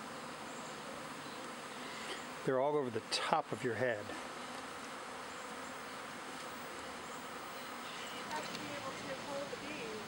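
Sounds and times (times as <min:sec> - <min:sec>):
bee swarm buzzing: 0:00.0 - 0:10.0.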